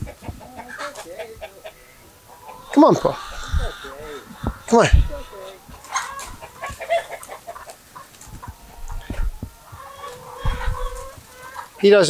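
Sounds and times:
hens clucking: 0.0 - 12.0
low thumps: 8.2 - 9.8.

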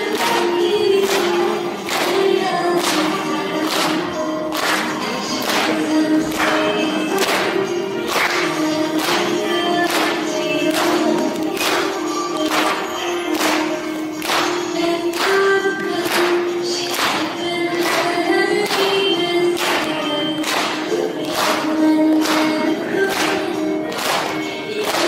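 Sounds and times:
clapped beat: 0.0 - 25.0.

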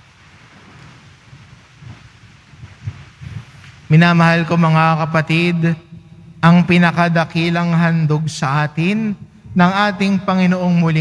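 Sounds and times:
clothing rustling and shuffling: 0.0 - 3.9
low knocks and rumbles: 0.8 - 3.9.

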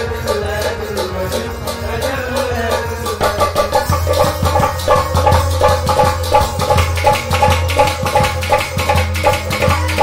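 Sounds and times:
hand drum rhythm: 0.0 - 10.0.

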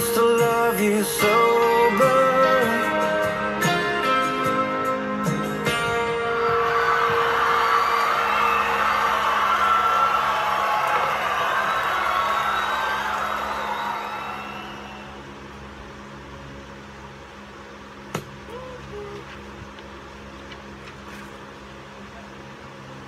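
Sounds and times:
recorded song: 0.0 - 10.2
low steady hum: 0.0 - 23.0.

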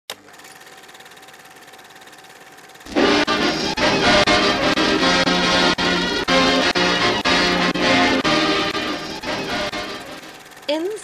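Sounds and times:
mechanical whir with flutter: 0.1 - 3.8, 9.1 - 11.0.

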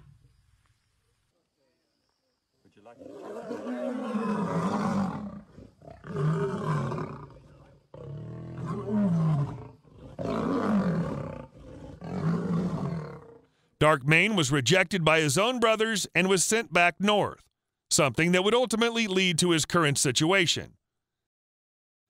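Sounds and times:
lions roaring: 3.0 - 13.4.

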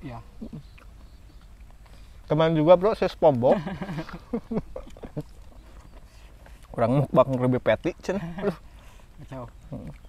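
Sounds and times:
men chuckling softly: 3.4 - 5.8, 8.1 - 9.4.

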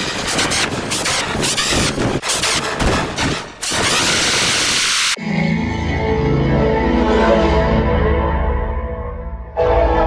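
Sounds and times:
distorted chopped scream: 0.0 - 5.2.

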